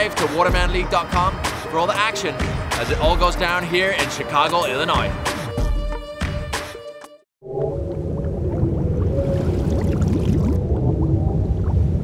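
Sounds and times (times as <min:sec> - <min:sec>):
bubbles gurgling: 0:07.4 - 0:12.0
deep underwater rumble: 0:07.4 - 0:12.0.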